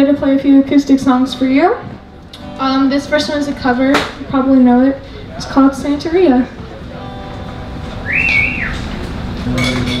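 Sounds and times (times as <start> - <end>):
audience whistle: 8.0 - 8.9.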